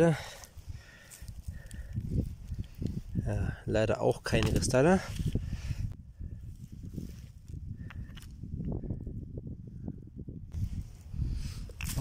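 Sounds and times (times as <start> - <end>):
microphone handling rumble: 1.4 - 12.0
stones shifted by hand: 4.2 - 5.4.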